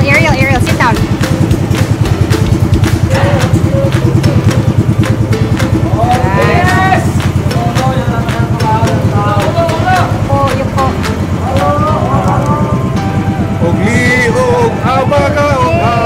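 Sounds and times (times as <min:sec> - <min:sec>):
people talking: 0:00.0 - 0:01.2, 0:05.8 - 0:12.7, 0:13.6 - 0:16.0
boat engine chugging: 0:00.0 - 0:16.0.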